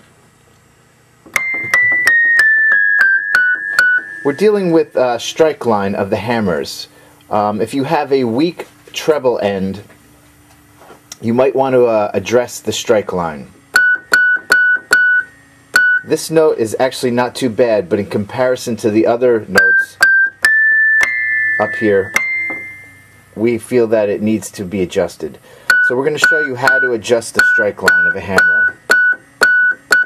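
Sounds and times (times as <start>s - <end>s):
electric piano descending run: 1.3s - 5.0s, 19.6s - 23.6s.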